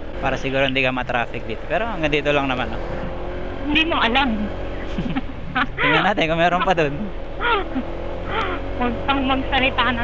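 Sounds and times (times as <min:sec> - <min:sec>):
road and wind drone: 0:00.0 - 0:10.0
scooter engine running: 0:00.0 - 0:10.0.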